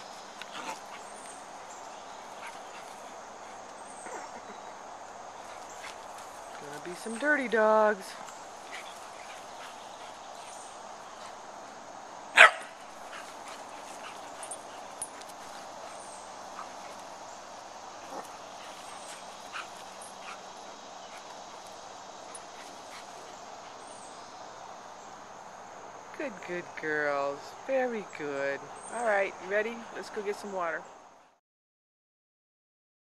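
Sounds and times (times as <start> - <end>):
faint background noise: 0.0 - 31.4
dog barking: 12.4 - 12.8.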